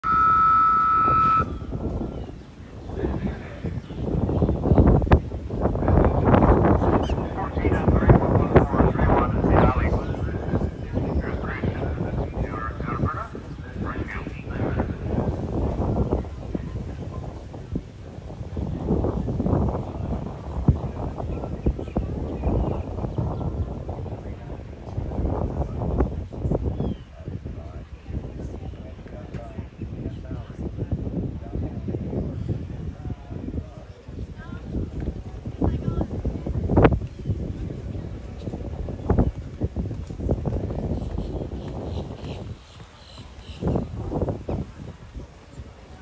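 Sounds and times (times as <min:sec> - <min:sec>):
loud electronic tone: 0:00.0 - 0:01.8
wind on microphone: 0:00.0 - 0:46.0.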